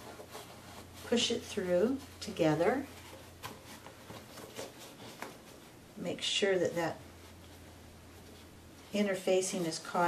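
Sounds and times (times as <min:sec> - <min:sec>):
fabric rustling: 0:00.0 - 0:10.0
soft fabric crackles: 0:00.0 - 0:10.0.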